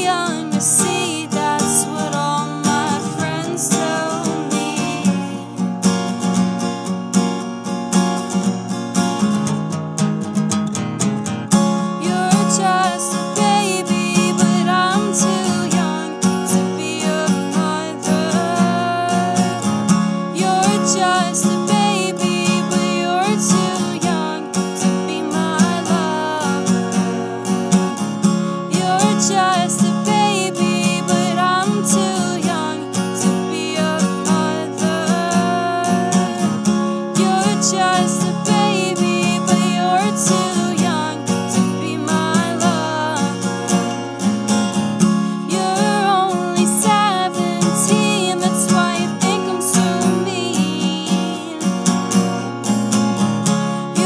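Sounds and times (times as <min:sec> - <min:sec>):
woman singing: 0:00.0 - 0:06.1, 0:11.8 - 0:52.4, 0:53.5 - 0:54.0
acoustic guitar strumming: 0:00.0 - 0:54.0
bending melodic guitar line: 0:00.0 - 0:54.0.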